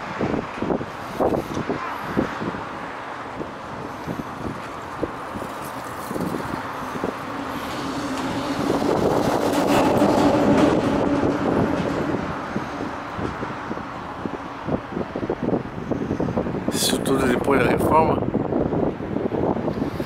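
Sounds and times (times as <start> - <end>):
motor vehicle passing: 0.0 - 16.7.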